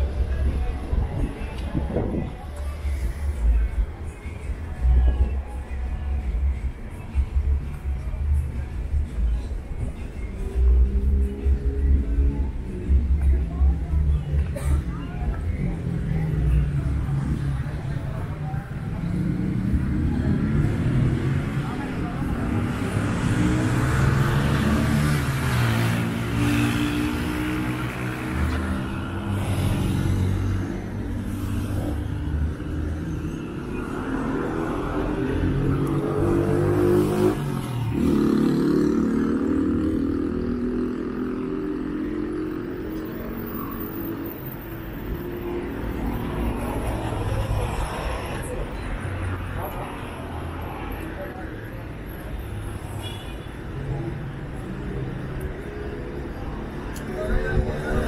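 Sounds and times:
car engines passing: 0.0s - 58.0s.

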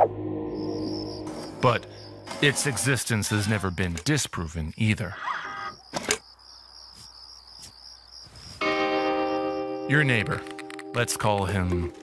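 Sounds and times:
crickets chirping: 0.4s - 10.4s.

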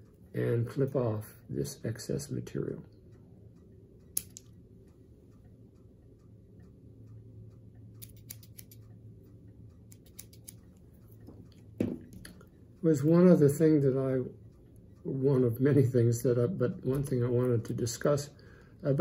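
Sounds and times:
low steady hum: 0.0s - 19.0s
scissors snipping clicks: 4.1s - 4.5s, 8.0s - 9.0s, 9.8s - 10.8s
soft thump: 11.8s - 12.1s.

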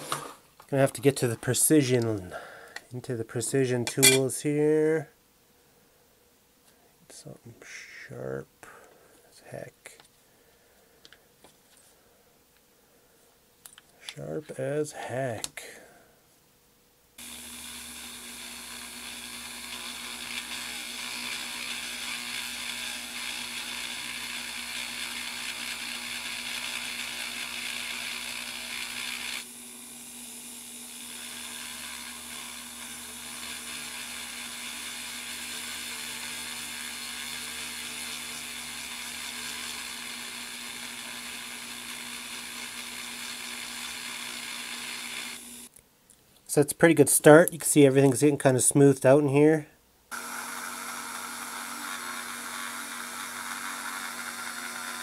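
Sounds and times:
rotary tool grinding metal: 17.2s - 45.7s, 50.1s - 55.0s.

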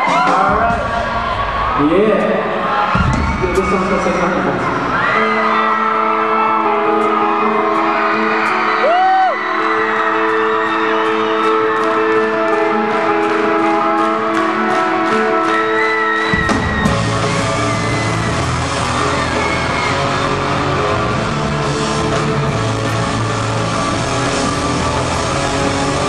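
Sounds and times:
rock band with drums and bass: 0.0s - 1.8s, 4.7s - 26.0s
crowd whoop: 2.7s - 12.6s, 15.1s - 21.1s.

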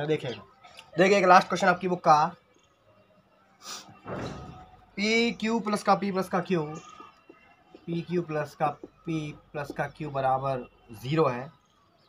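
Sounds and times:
short hiss: 3.6s - 4.2s
dull thump: 4.0s - 4.8s.

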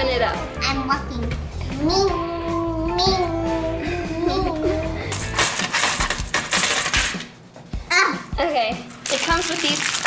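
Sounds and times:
plastic chips clattering: 5.1s - 7.2s, 9.0s - 10.0s.

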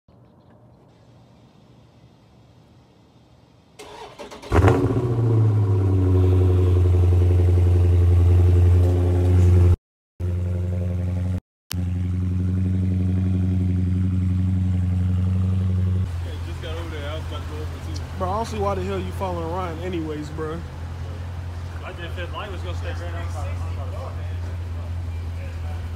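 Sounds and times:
car engine revving and idling: 4.4s - 25.9s
voices talking: 16.1s - 25.9s.

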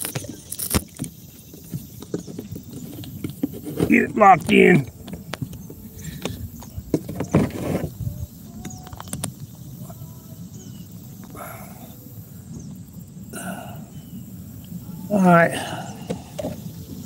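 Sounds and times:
faint short calls: 3.6s - 6.3s.

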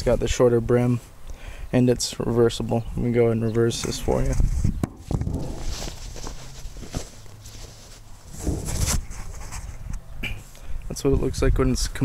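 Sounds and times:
fabric rustling: 5.2s - 9.8s.

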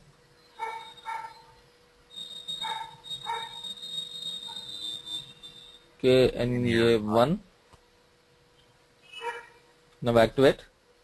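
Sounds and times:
steady high whine: 0.0s - 11.0s
faint pitched animal calls: 0.6s - 1.6s, 2.2s - 5.8s, 9.0s - 9.6s.

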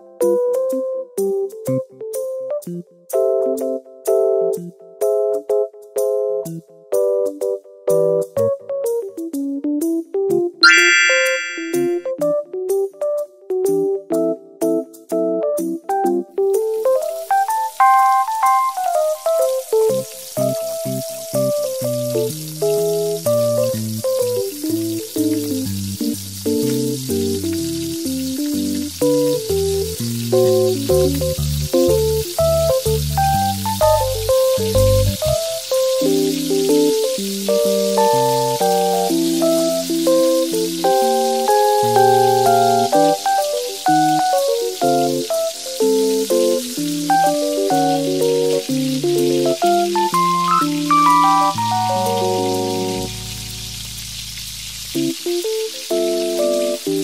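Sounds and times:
background music with short notes: 10.6s - 12.1s, 46.8s - 53.6s
tofu balls sizzling in hot oil: 16.5s - 57.0s.

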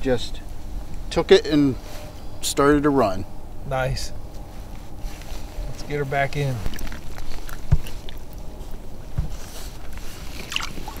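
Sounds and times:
water sloshing against kayak: 10.2s - 11.0s
short splash: 10.4s - 11.0s.

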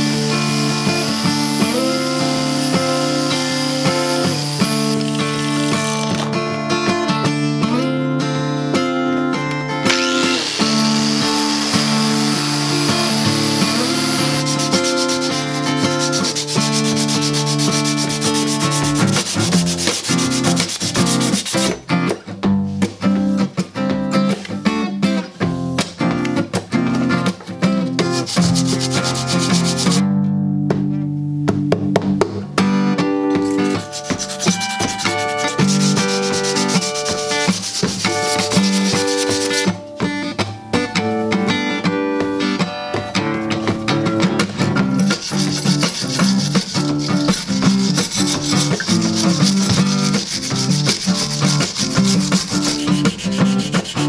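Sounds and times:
knife blade being sanded: 0.0s - 6.1s, 10.2s - 21.7s, 28.1s - 30.0s, 33.4s - 39.7s, 45.0s - 54.0s
acoustic guitar chords: 0.0s - 54.0s.

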